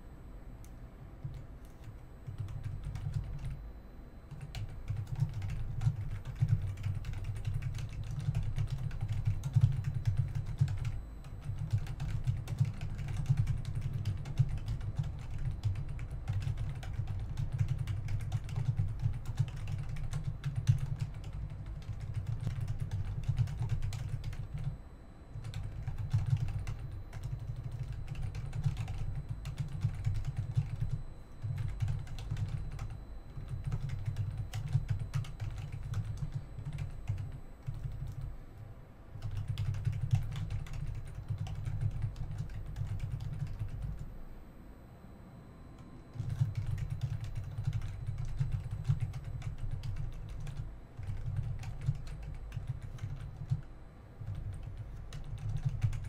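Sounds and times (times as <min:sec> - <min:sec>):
computer keyboard typing: 0:01.2 - 0:03.6, 0:04.3 - 0:24.8, 0:25.4 - 0:38.3, 0:39.2 - 0:44.1, 0:46.1 - 0:56.0.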